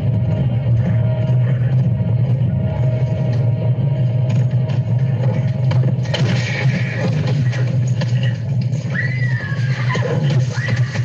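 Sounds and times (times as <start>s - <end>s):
film soundtrack music: 0.0s - 11.0s
low rumble: 0.0s - 11.0s.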